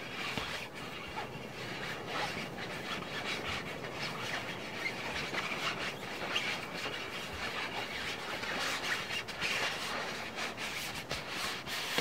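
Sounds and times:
ball rubbing against microphone: 0.0 - 12.0.

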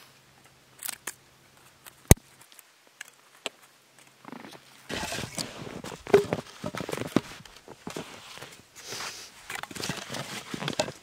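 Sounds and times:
crunching and rustling in snow: 4.3 - 11.0.

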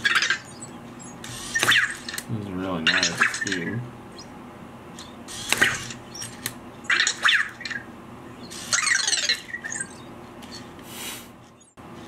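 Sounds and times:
robot electronic chirps: 0.0 - 2.2, 5.0 - 10.6.

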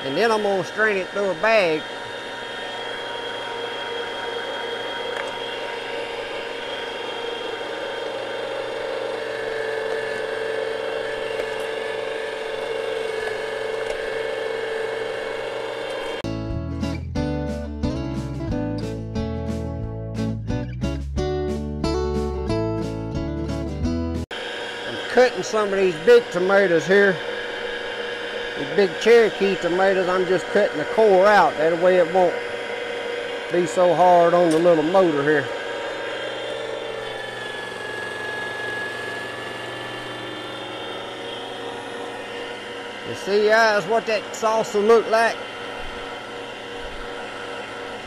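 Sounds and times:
electric motor whining: 0.0 - 16.2, 24.3 - 48.0
background music with guitar and bass: 16.2 - 24.2.

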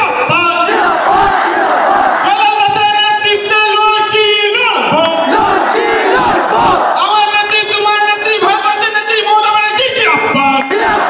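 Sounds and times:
crowd shouting: 0.5 - 2.5, 5.0 - 7.3, 10.7 - 11.0.

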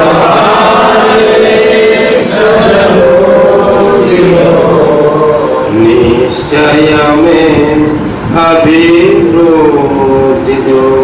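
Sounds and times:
man chanting a mantra: 0.0 - 11.0.

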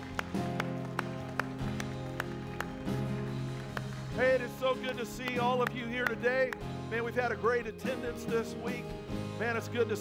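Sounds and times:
keyboard and bass chords: 0.0 - 10.0.

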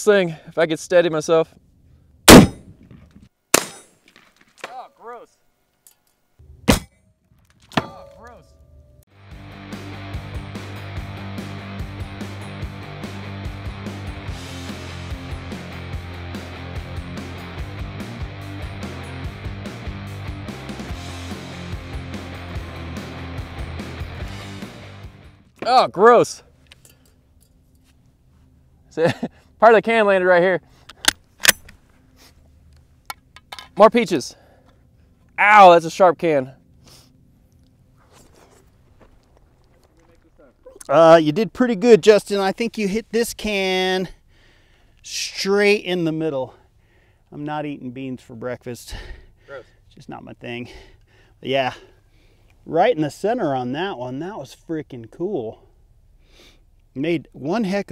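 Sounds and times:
rifle round cracks: 2.3 - 4.6
metallic clanging and ringing: 7.8 - 9.1.

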